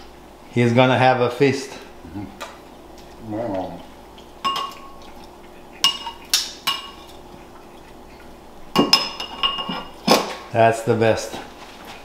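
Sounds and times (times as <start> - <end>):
metal tongs clinking on dish: 4.4 - 5.0.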